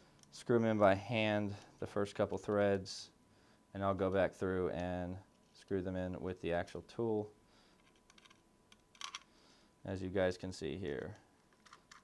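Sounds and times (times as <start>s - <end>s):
small metal screws clicking: 7.8s - 9.3s.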